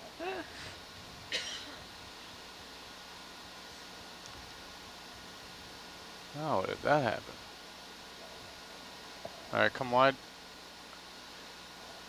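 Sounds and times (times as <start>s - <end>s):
microphone hiss and hum: 0.0s - 12.0s.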